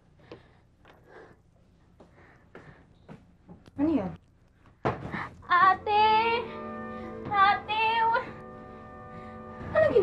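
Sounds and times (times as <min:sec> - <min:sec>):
sustained instrumental chords: 0:05.5 - 0:10.0.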